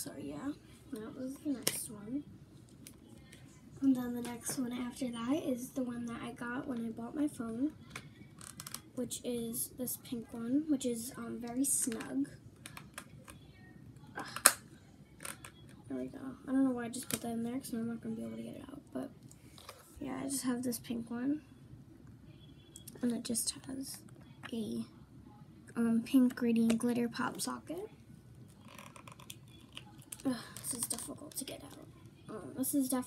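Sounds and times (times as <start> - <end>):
soft plastic scraping: 28.5 - 31.8.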